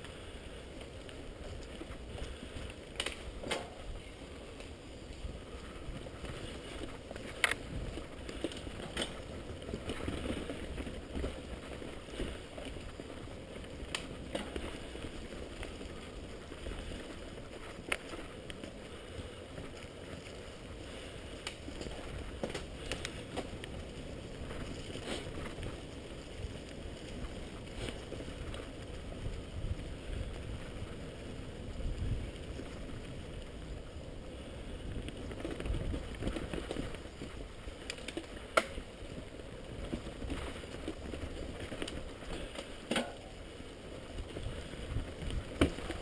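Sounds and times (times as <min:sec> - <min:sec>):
bike tyres rumbling on dirt: 0:00.0 - 0:46.0
bike knocks and rattles: 0:41.6 - 0:43.4, 0:45.2 - 0:46.0.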